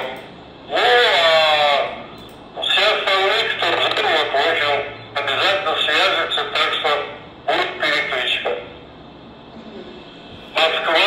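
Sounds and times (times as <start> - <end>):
person talking over radio: 0.0 - 1.9, 2.6 - 8.7, 10.5 - 11.0.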